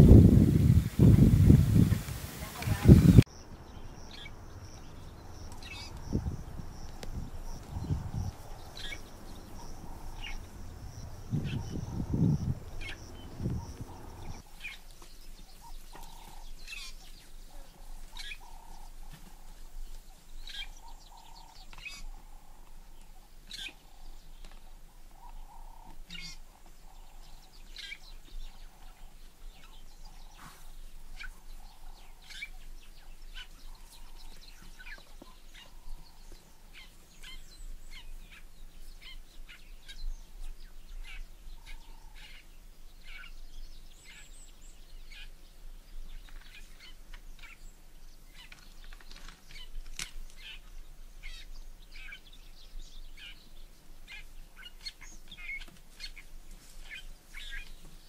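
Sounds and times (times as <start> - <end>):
birds chirping: 0.0 - 58.0.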